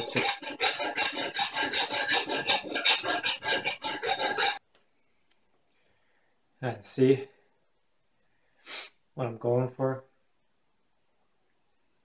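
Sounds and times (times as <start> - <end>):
metal file rasping on knife blade: 0.0 - 4.6.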